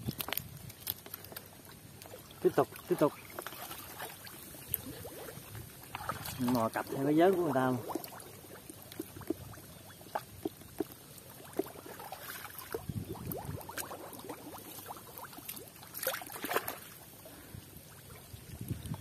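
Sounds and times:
wet squelches: 0.1 - 19.0
small splashes: 0.2 - 19.0
hands sloshing in muddy water: 2.0 - 19.0.

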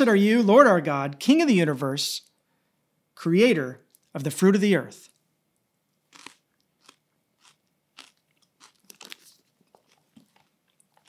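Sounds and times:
man chewing crunchy herbs: 6.1 - 11.0.

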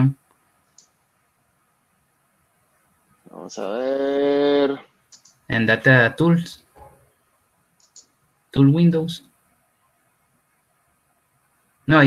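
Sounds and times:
person's voice: 3.3 - 4.8.

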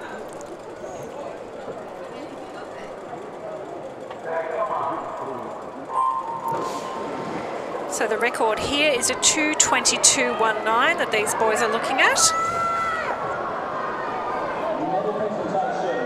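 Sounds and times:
swimmers splashing: 0.0 - 14.8
crowd chatter: 0.0 - 16.0.

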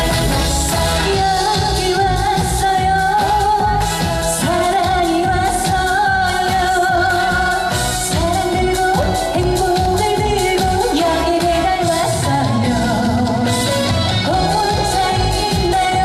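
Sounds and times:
amplified backing music with beat: 0.0 - 16.0
woman singing pop song: 0.0 - 16.0.

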